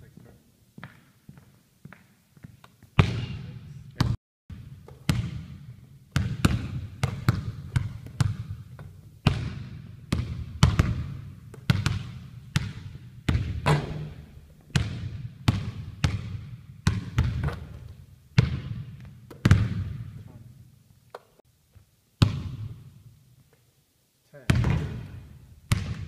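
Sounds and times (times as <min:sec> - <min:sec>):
basketball dribbled on hardwood floor: 0:03.0 - 0:03.4, 0:04.0 - 0:20.2, 0:24.5 - 0:26.0.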